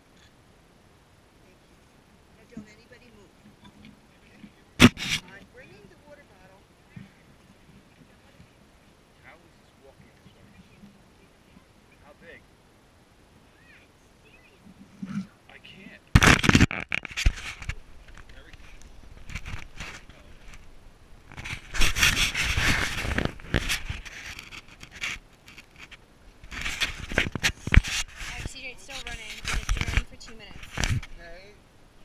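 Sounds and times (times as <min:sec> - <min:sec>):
fingers rubbing camera housing: 0:21.3 - 0:28.4.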